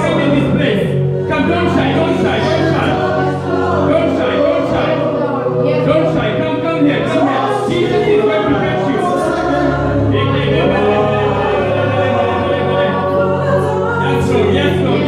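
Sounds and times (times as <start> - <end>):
backing music: 0.0 - 15.0
voices singing gospel song: 0.0 - 15.0.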